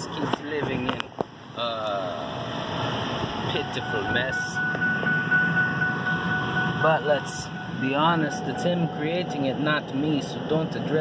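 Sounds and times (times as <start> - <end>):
road and engine rumble: 0.0 - 11.0
high whine: 0.9 - 11.0.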